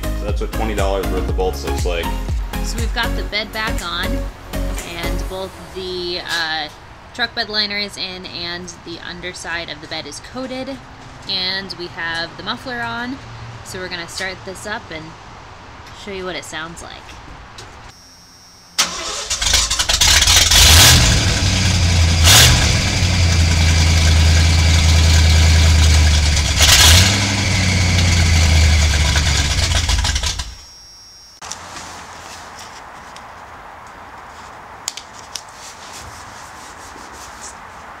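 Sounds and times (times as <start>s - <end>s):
truck engine starting and revving: 18.8s - 30.6s.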